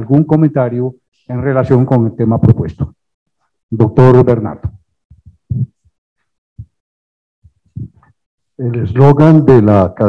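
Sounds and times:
muffled fragments of man's voice: 0:00.0 - 0:03.0.

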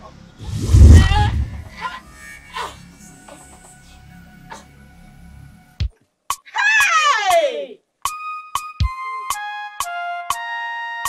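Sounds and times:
woman screaming: 0:06.5 - 0:07.8.

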